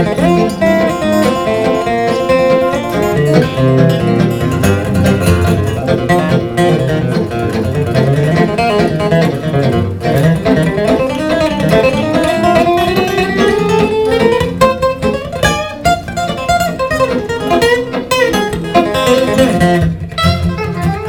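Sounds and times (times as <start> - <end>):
country guitar instrumental: 0.0 - 21.0.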